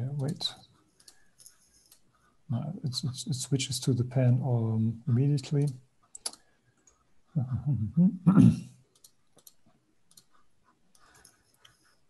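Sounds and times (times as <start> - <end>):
computer mouse clicks: 0.2 - 2.1, 5.6 - 7.1, 8.9 - 11.8
person laughing: 7.4 - 8.6.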